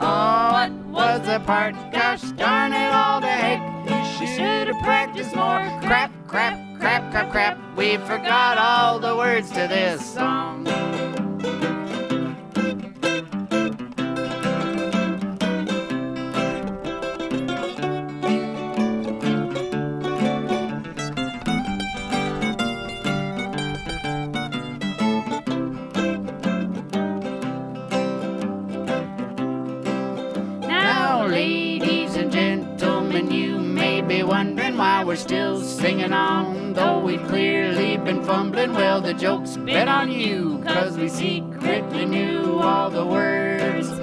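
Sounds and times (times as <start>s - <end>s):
acoustic guitar: 0.0s - 44.0s
mandolin: 0.0s - 44.0s.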